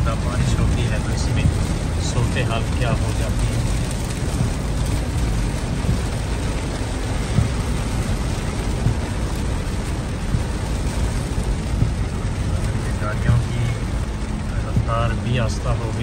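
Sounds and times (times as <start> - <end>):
heavy rain on car windshield: 0.0 - 16.0
road and tyre noise: 0.0 - 16.0.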